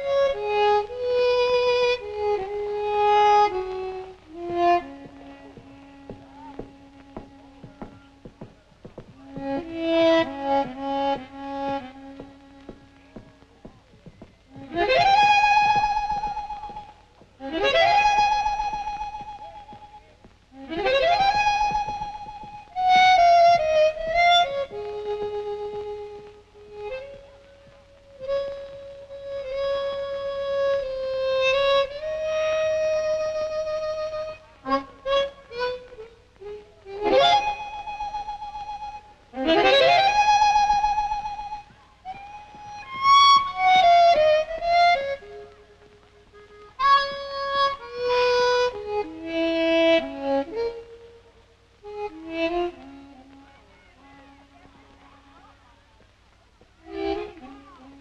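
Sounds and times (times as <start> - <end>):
solo harmonica music: 0.0 - 54.6, 56.8 - 58.0.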